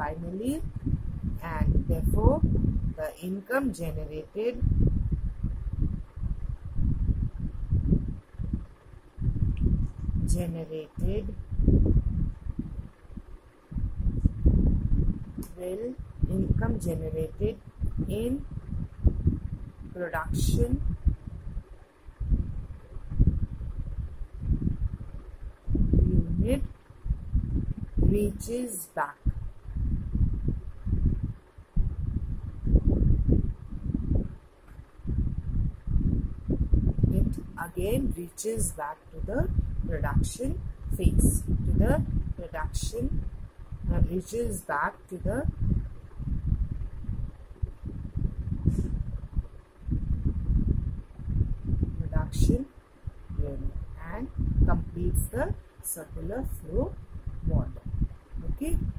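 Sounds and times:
low rumbling microphone noise: 0:00.0 - 0:58.9.

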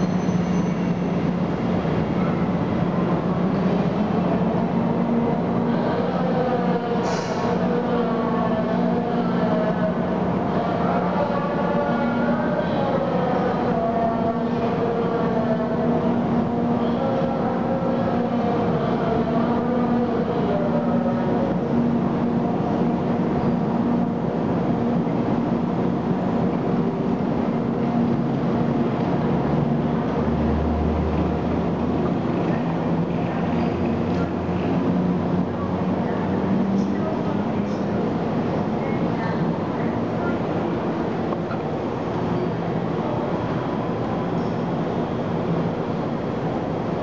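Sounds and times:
electric locomotive humming and whining: 0:00.0 - 0:47.0.

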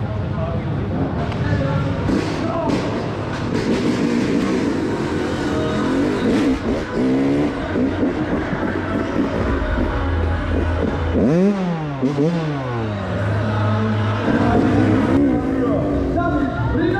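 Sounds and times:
dirt bike engine revving: 0:01.9 - 0:16.9.

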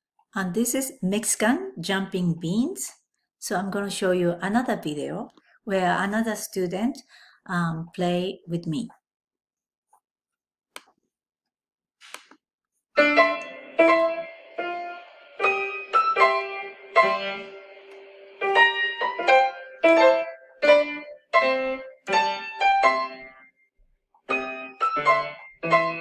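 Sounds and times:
staccato piano duet: 0:24.3 - 0:26.0.

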